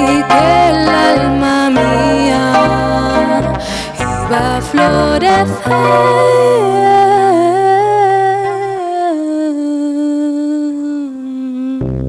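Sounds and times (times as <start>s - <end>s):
double bass: 0.0s - 8.4s
acoustic guitar plucked notes: 0.0s - 9.2s
woman singing a long note: 0.0s - 12.0s.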